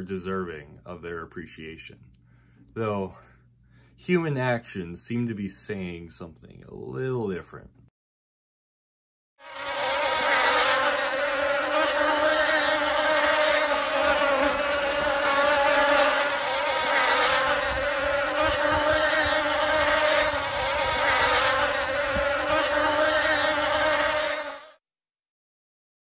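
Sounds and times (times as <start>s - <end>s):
high-pitched buzzing drone: 9.4s - 24.8s.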